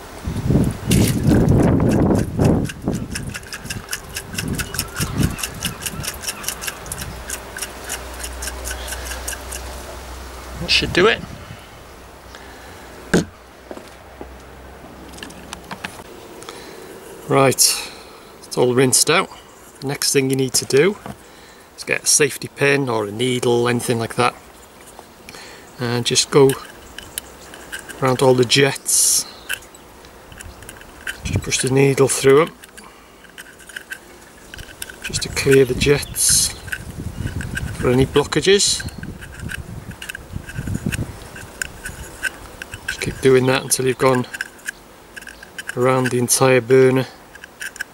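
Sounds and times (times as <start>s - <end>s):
pin clicking against metal jets: 0.9s - 9.7s, 26.0s - 47.9s
handling knock: 13.1s - 13.8s.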